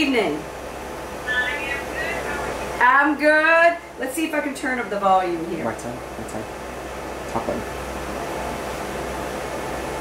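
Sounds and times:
low constant hum: 0:00.0 - 0:10.0.

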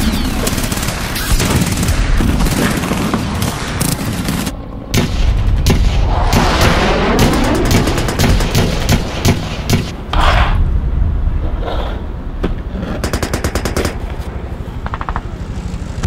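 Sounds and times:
low rumble: 0:03.9 - 0:13.0
automatic gunfire: 0:07.1 - 0:09.9.

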